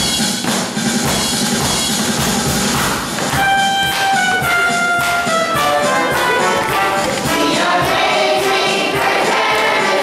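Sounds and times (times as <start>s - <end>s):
drums playing: 0.0s - 10.0s
trumpet holding long note: 3.4s - 7.3s.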